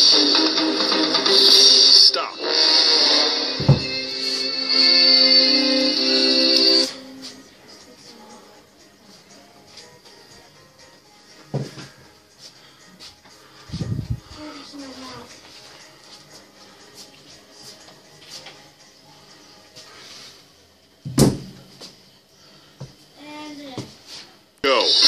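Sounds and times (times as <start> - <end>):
faint workout music: 0.0 - 25.0
dumbbells thudding on tiled floor: 3.6 - 3.9, 11.5 - 11.9, 21.0 - 21.8.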